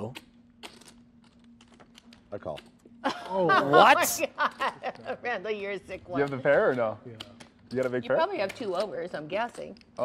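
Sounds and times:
clay poker chips clicking: 0:00.6 - 0:02.8.

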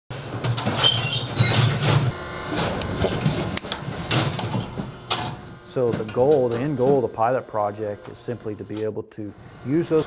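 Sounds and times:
hydraulic hum: 0:00.1 - 0:10.0
steel gates squeaking: 0:00.7 - 0:02.0.

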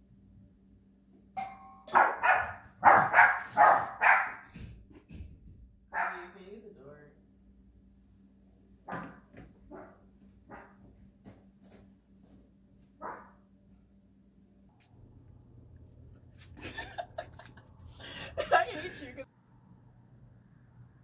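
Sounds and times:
doorbell chiming: 0:01.4 - 0:02.0
dog barking: 0:01.9 - 0:04.5, 0:05.9 - 0:06.4, 0:08.9 - 0:10.8, 0:13.0 - 0:13.4.

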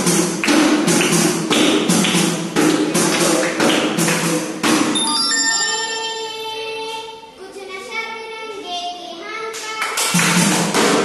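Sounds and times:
hand claps: 0:00.4 - 0:04.5, 0:09.5 - 0:11.0
devotional music: 0:05.0 - 0:07.2.

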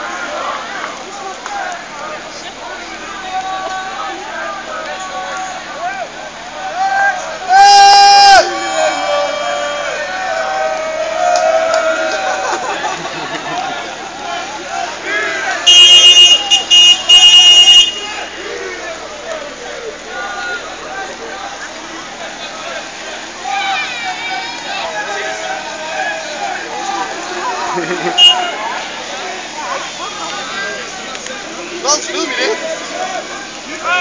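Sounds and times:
crowd voices and shouting: 0:00.0 - 0:34.0
car horn blasts: 0:15.6 - 0:18.4, 0:28.1 - 0:28.6
loud steady horn note: 0:15.6 - 0:18.4, 0:28.2 - 0:28.6.

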